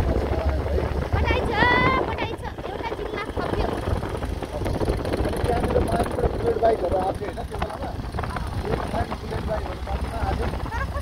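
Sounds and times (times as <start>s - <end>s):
motorcycle engine running: 0.0s - 11.0s
wind rumbling on microphone: 0.0s - 11.0s.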